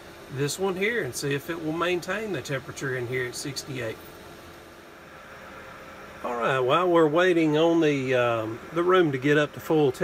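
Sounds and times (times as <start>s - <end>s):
faint hum: 0.0s - 10.0s
space heater fan hiss: 0.0s - 10.0s.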